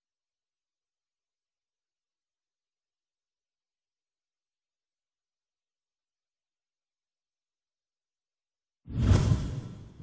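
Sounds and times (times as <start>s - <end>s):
deep whoosh: 8.9s - 10.0s.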